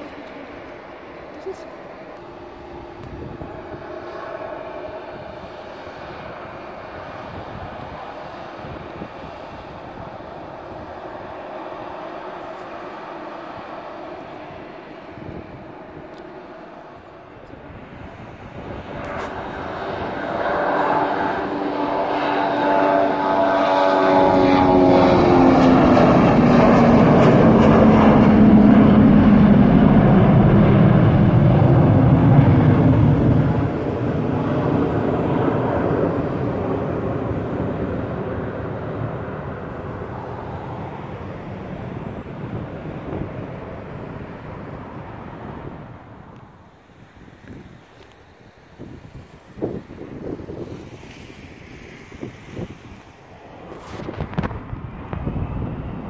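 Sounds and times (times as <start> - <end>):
jet airliner taking off: 0.0 - 56.0.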